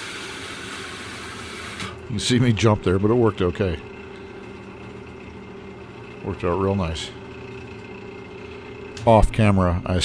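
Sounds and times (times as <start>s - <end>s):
wood lathe motor humming: 0.0s - 10.0s.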